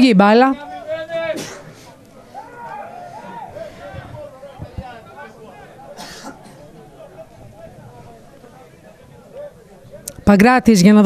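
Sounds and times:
faint shouting voices: 0.6 - 10.2
person clearing throat: 6.0 - 6.6.

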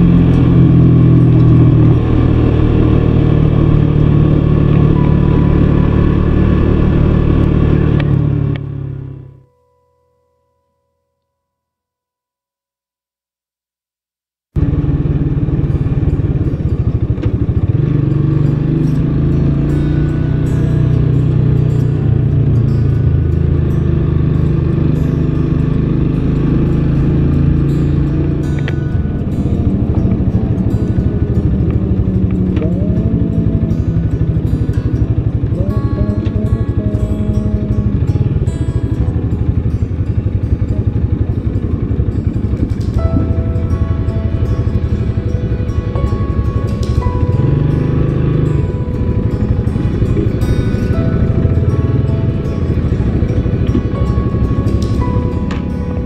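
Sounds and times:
motorcycle engine running: 0.0 - 9.4, 14.6 - 56.0
music playing: 0.0 - 10.6, 15.6 - 56.0.

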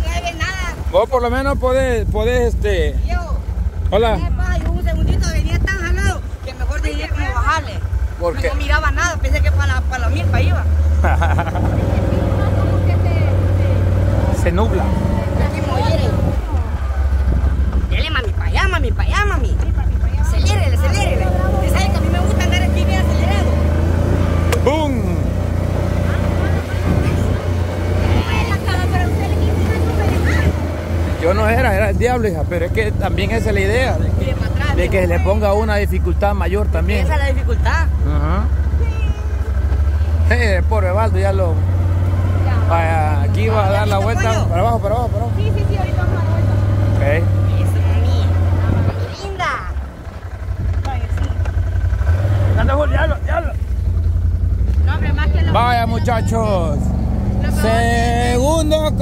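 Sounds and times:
small motorcycle engine running: 0.0 - 59.0.

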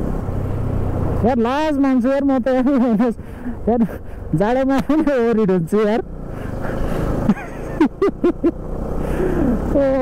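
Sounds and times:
motorcycle engine rumble: 0.0 - 10.0
rushing wind and road noise: 0.0 - 10.0.

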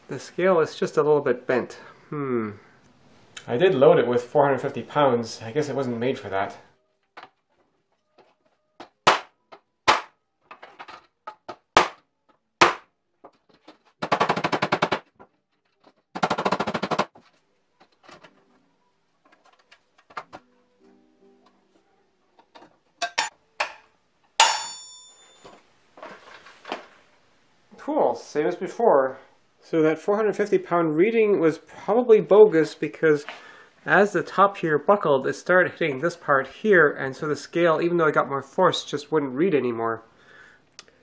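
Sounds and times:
metallic clang with ringing: 24.4 - 25.5.

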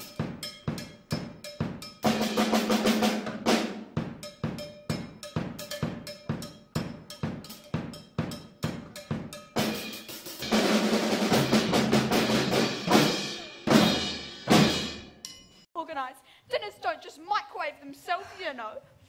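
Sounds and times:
drum roll: 0.0 - 15.1
drum hits: 0.0 - 15.2
woman's voice: 15.8 - 18.9.

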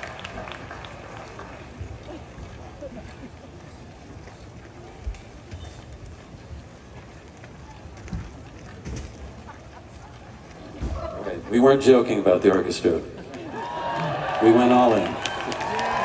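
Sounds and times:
murmur of audience voices: 0.0 - 16.0.

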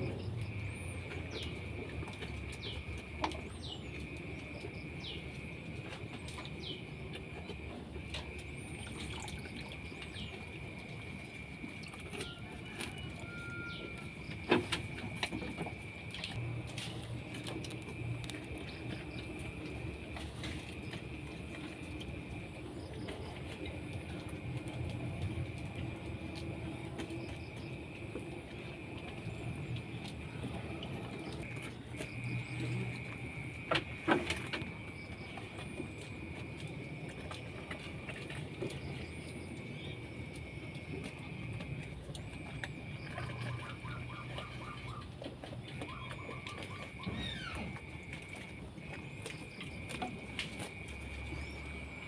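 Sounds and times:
goat slurping and chewing: 0.0 - 52.0.

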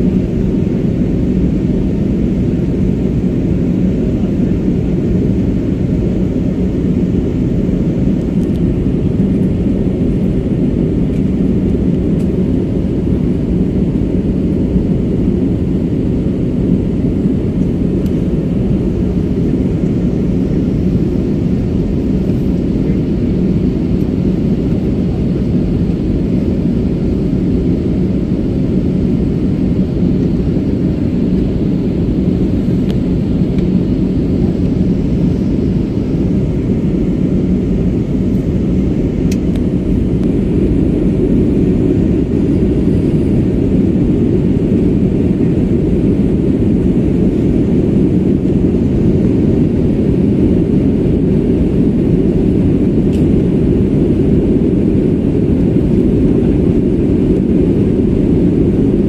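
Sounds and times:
airliner cabin drone: 0.0 - 59.0.

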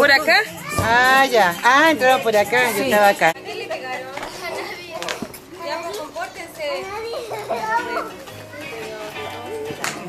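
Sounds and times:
background music: 0.0 - 10.0
children chattering and calling: 0.0 - 10.0.

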